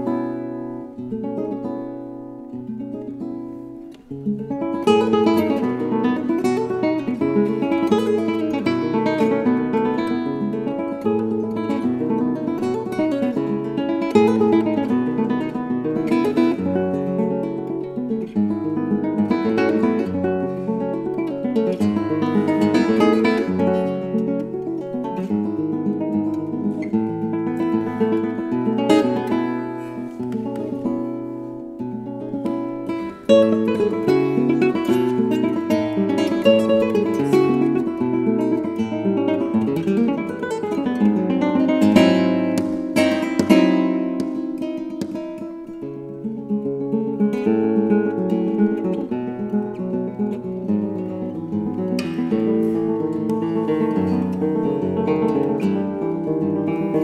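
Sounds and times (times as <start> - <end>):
nylon-string guitar playing: 0.0 - 57.0.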